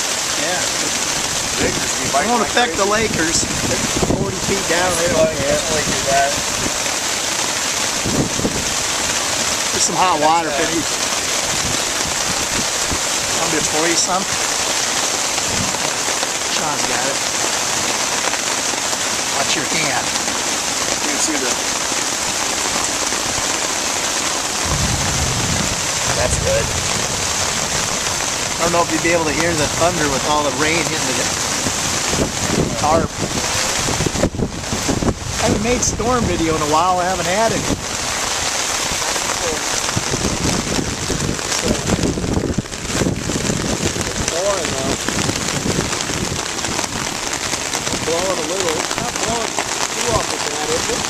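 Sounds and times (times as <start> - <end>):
heavy rain on a tarp: 0.0 - 51.0
rain splashing on lake: 0.0 - 51.0
low rumble: 24.6 - 29.8.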